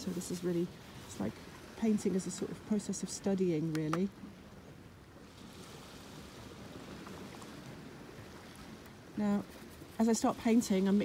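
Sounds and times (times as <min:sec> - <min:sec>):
faint sea surf: 0:00.0 - 0:11.0.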